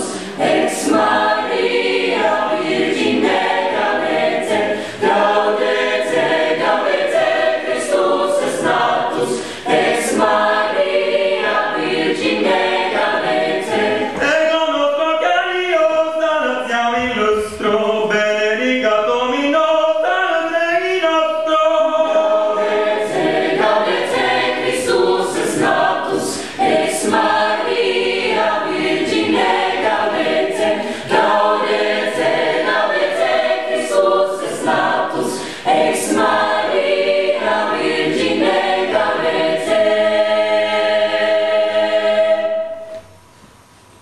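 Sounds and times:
mixed choir singing a cappella: 0.0s - 43.2s.

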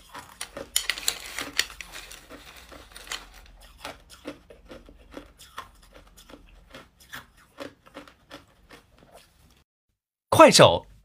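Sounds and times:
ice being chewed: 0.0s - 9.6s.

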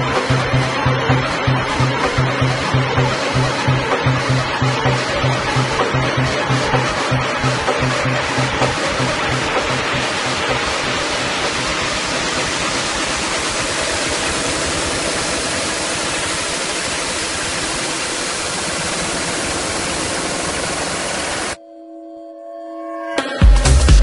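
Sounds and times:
held synth chord: 0.0s - 23.2s.

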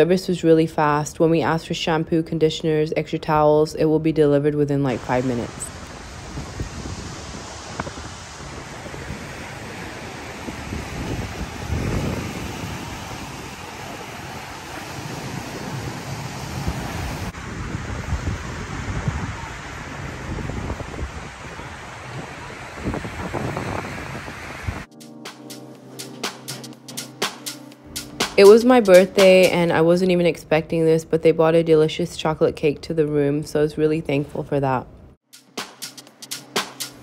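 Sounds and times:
wind gusting on microphone: 4.8s - 24.9s
small waves breaking on sand: 5.0s - 24.9s
background music: 24.9s - 30.0s, 35.2s - 37.0s.

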